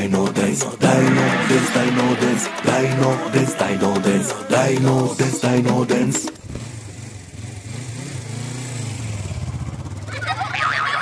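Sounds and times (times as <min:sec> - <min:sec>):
children's pop song: 0:00.0 - 0:06.4.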